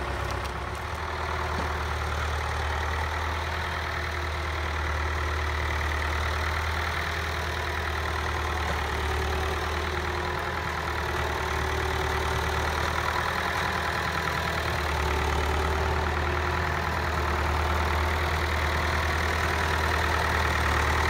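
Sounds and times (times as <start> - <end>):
tractor diesel engine idling: 0.0 - 21.0.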